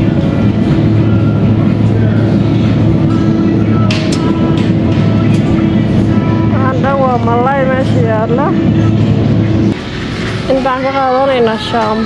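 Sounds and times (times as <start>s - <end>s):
refrigerator electrical hum: 0.0s - 12.0s.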